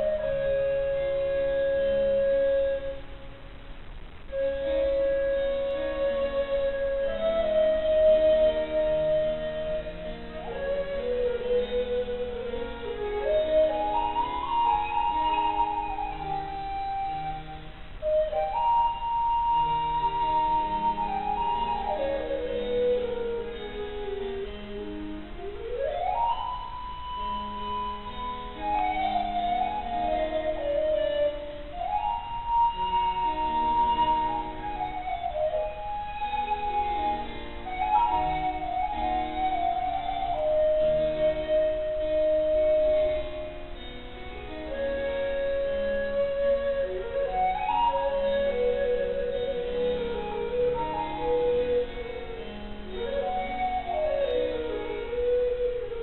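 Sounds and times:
recorder melody: 0.0 - 56.0
harpsichord accompaniment: 32.8 - 56.0.

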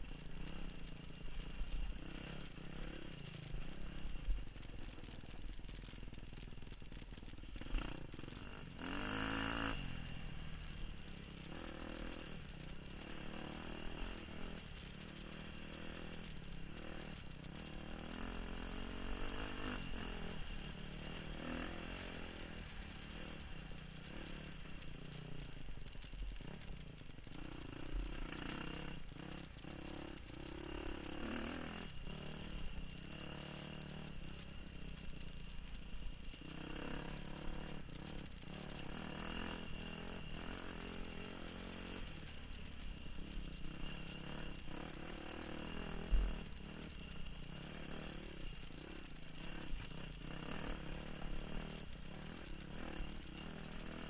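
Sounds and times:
dirt bike engine running: 0.0 - 54.0.

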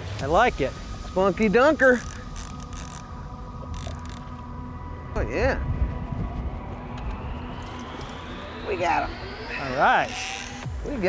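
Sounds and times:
wind rumbling on microphone: 0.2 - 9.5.

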